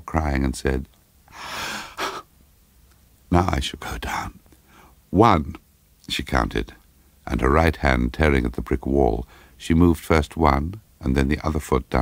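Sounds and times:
man drawing breath: 1.3 - 2.3, 9.3 - 9.6.

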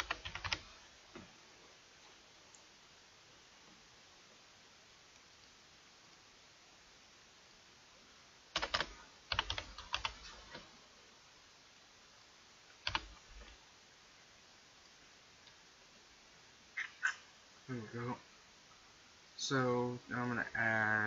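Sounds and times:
keyboard typing: 0.0 - 0.7, 8.6 - 10.7, 12.8 - 13.6.

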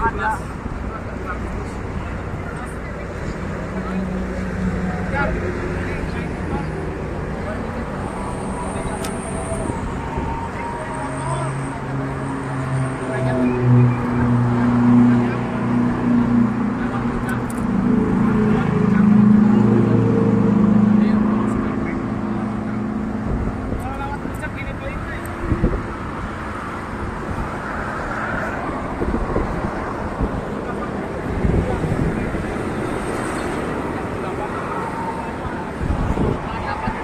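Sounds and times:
steady traffic background: 0.0 - 37.0
vehicle engine humming: 0.0 - 37.0.

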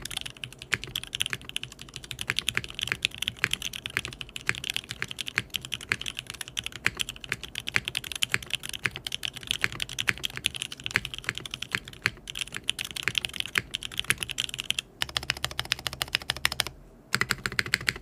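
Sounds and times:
rapid mechanical keyboard typing: 0.0 - 18.0.

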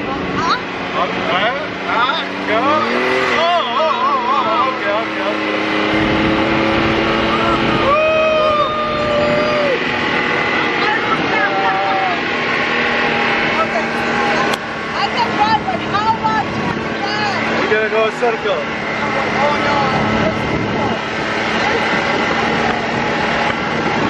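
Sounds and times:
dune buggy engine running: 0.0 - 24.0
excited voices and exclamations: 7.2 - 12.4.

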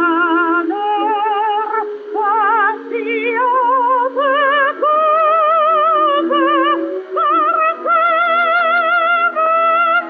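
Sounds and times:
held accompaniment line: 0.0 - 10.0
woman singing opera: 0.0 - 10.0.

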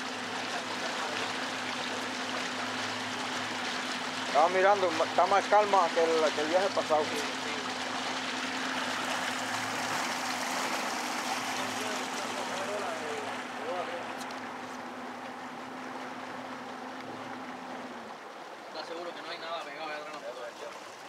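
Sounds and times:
boat motor humming: 0.0 - 21.0
water rushing along hull: 0.0 - 21.0.

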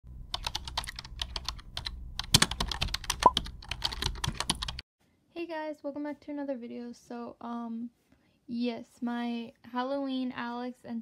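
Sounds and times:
low steady hum: 0.1 - 4.8.

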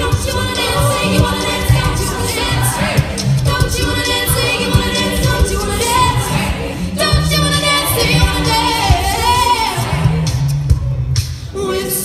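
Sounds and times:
female lead singing: 0.0 - 10.3
backing voices holding low notes: 0.0 - 11.8.

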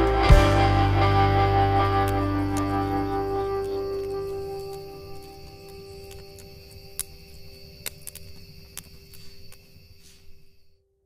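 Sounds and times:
sustained musical chord ringing: 0.0 - 5.1
sharp clicks: 1.8 - 10.2.

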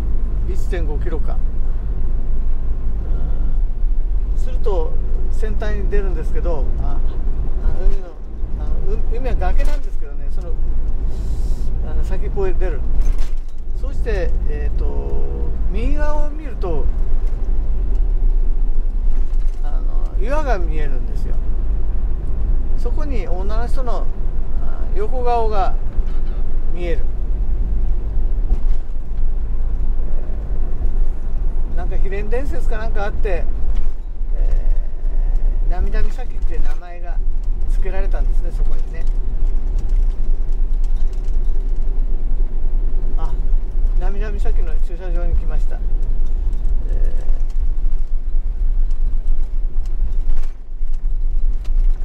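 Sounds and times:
vehicle engine and tyre rumble: 0.0 - 52.0.

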